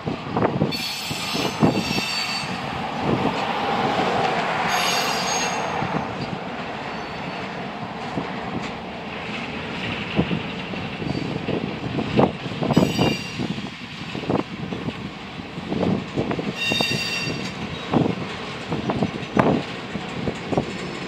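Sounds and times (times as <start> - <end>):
train cars clanking: 0.0 - 21.0
freight cars rolling past: 0.1 - 21.0
metallic wheel squeal: 0.7 - 2.6, 4.7 - 5.8, 6.8 - 7.6, 12.7 - 13.7, 16.6 - 18.0.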